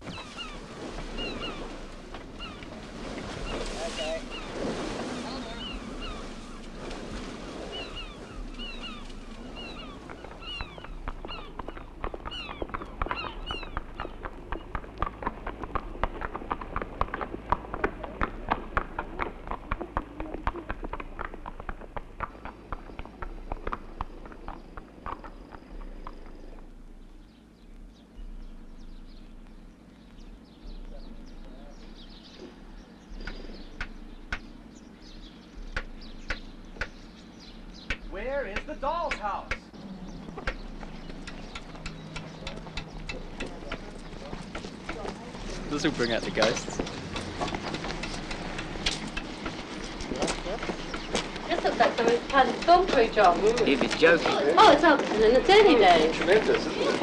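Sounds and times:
birds chirping: 0.0 - 57.0
quick irregular clicks: 40.4 - 51.5.

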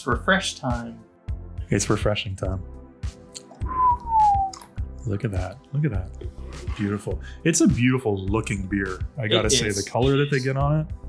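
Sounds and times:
background music: 0.0 - 11.0
whistle-like tone sliding downward: 3.6 - 4.6.

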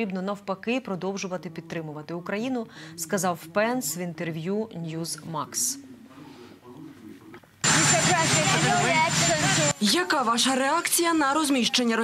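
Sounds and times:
helicopter turbine whine: 7.6 - 9.9.

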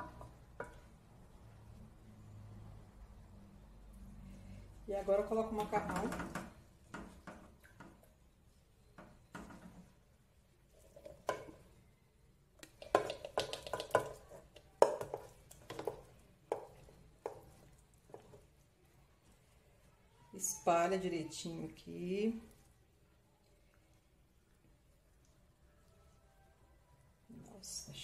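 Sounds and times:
wooden spoon knocking on metal pot: 5.6 - 8.0, 11.0 - 11.6, 12.6 - 18.4.

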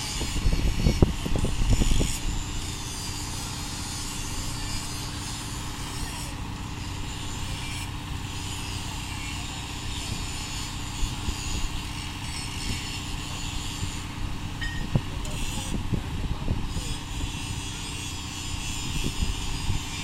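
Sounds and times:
crane engine humming: 0.0 - 20.0.

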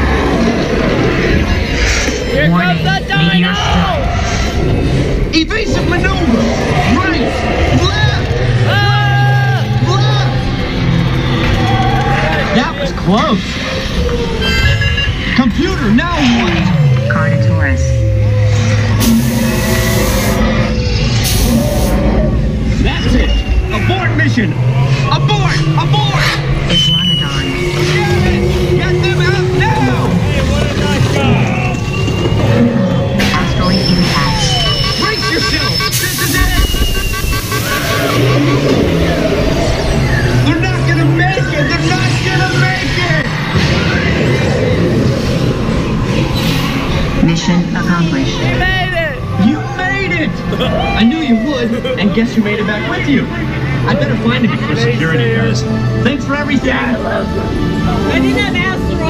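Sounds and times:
dark ride soundtrack: 0.0 - 59.0
ride vehicle rumble: 0.0 - 59.0.

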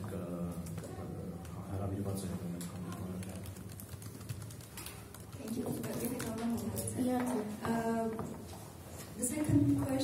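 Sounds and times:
quiet talk at a table: 0.0 - 10.0.

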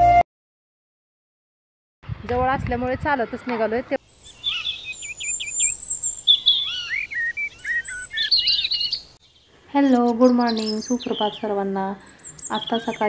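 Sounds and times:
birds singing and chirping: 2.3 - 13.0.

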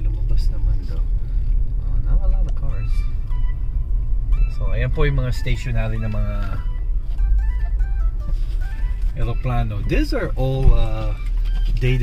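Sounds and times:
car engine rumble: 0.0 - 12.0
faint music: 0.0 - 12.0
road noise: 0.0 - 12.0.

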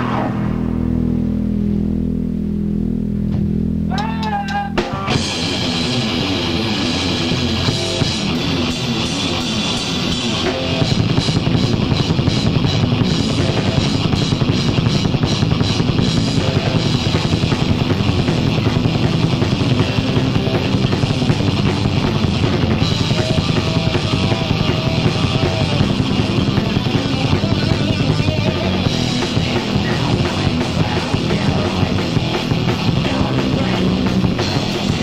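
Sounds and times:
drum kit: 0.0 - 35.0
electric guitar riffing: 0.0 - 35.0
thrash metal band playing: 0.0 - 35.0.

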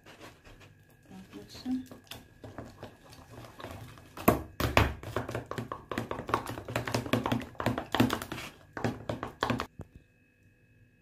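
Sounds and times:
metal spoon stirring paste in tub: 0.0 - 9.7.

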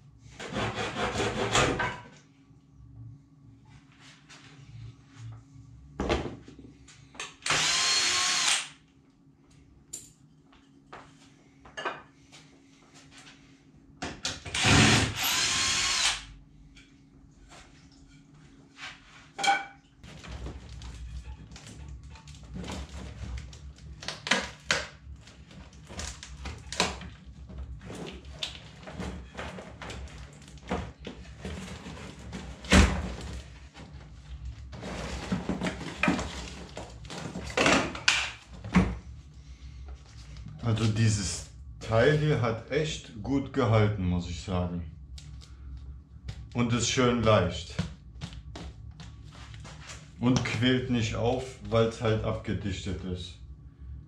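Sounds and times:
cordless drill driving into wood: 7.4 - 8.7, 14.5 - 16.2.

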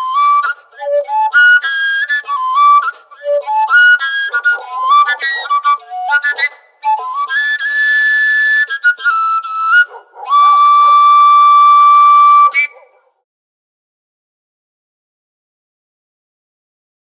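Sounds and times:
overtone flute playing: 0.0 - 13.0.

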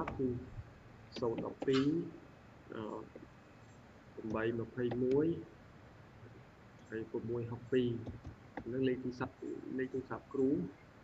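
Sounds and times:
man speaking over video call: 0.0 - 0.5, 1.2 - 3.2, 4.2 - 5.5, 6.9 - 10.8
faint background hiss: 0.0 - 11.0.

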